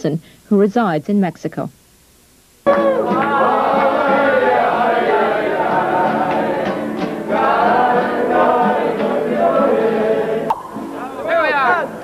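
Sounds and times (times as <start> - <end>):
acoustic guitar: 2.6 - 12.0
group singing mariachi style: 2.6 - 12.0.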